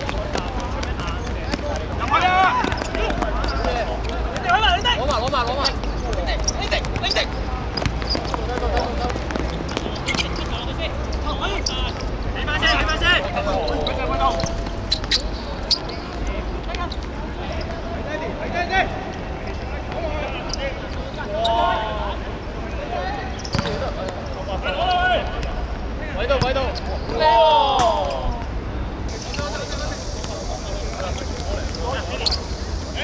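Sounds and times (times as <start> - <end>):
footballers shouting: 0.0 - 33.0
ball kicked thud: 23.5 - 23.9.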